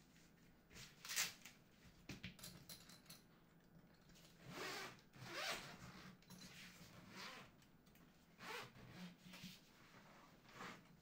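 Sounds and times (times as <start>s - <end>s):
zipper on padded case pulled open: 4.4s - 6.1s, 8.4s - 9.2s.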